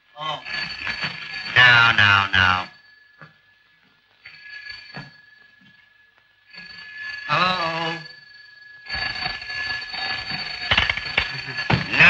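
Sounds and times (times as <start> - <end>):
electric bell ringing: 0.0 - 12.0.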